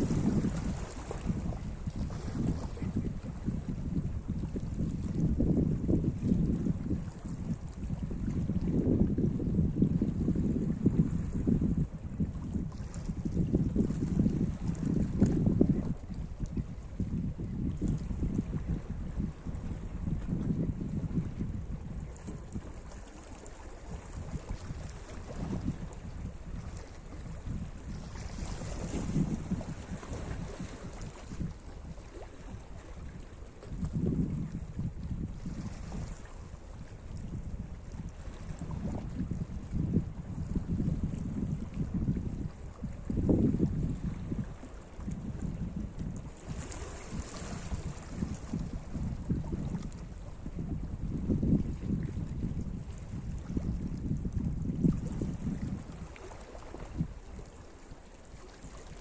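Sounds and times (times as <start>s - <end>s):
wind rumbling on microphone: 0.0s - 59.0s
waves lapping on rocky shore: 22.5s - 34.1s, 46.2s - 50.1s.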